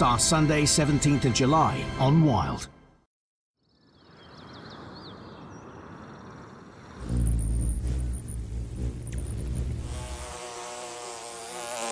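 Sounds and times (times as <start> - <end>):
bumblebee wing buzz: 6.7 - 11.9
deep low rumble: 7.0 - 10.2.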